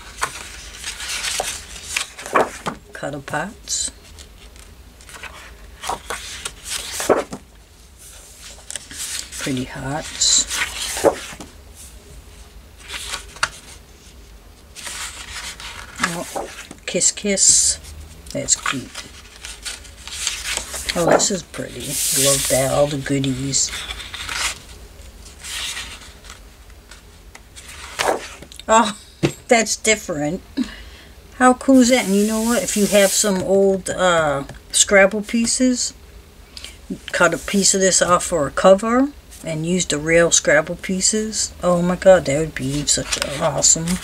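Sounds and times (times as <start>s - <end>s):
paper pages rustling: 0.0s - 2.8s, 4.0s - 11.5s, 12.8s - 16.8s, 17.8s - 28.5s, 42.5s - 44.0s.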